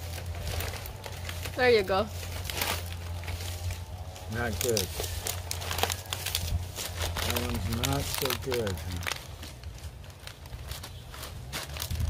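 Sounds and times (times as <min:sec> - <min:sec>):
palm leaflets rustling and crackling: 0:00.0 - 0:12.0.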